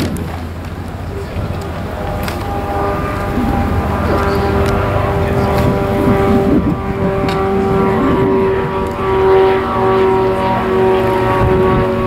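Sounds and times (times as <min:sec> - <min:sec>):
propeller aircraft droning overhead: 0:00.0 - 0:12.0.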